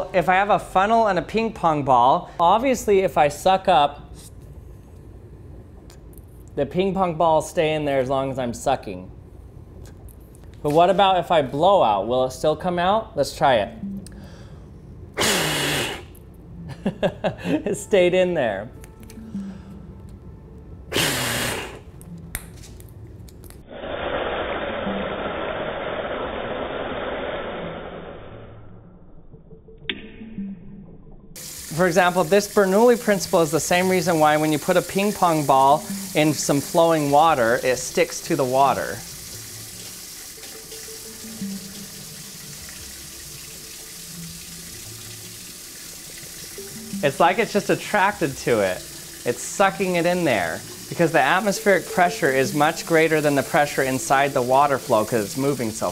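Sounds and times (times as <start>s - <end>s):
faint background music: 10.6s - 15.4s, 16.0s - 23.5s, 31.4s - 55.9s
man blowing through a funnel: 15.2s - 16.2s, 20.9s - 21.9s, 23.7s - 28.3s
water pouring into sink: 31.4s - 55.9s.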